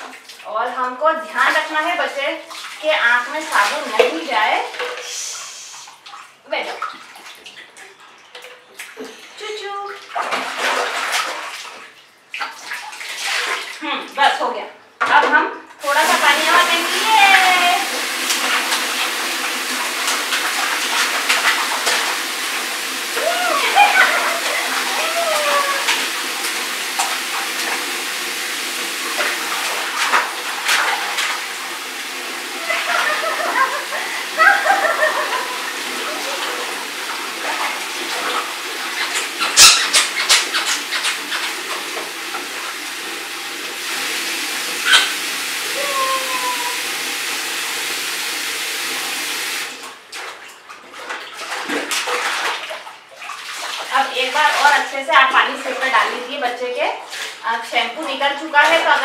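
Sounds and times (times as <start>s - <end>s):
water splashing in bathtub: 0.0s - 59.0s
voice sounds: 2.8s - 5.9s, 15.8s - 17.9s, 23.2s - 26.0s, 45.7s - 46.9s.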